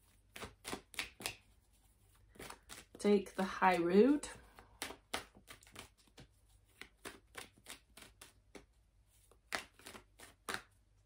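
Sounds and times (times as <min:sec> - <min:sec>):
cards being handled: 0:00.0 - 0:03.0, 0:04.3 - 0:11.0.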